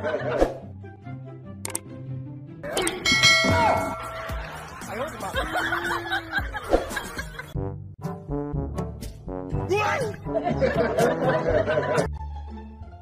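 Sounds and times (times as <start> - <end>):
loud metallic clang ringing: 3.0 - 4.6.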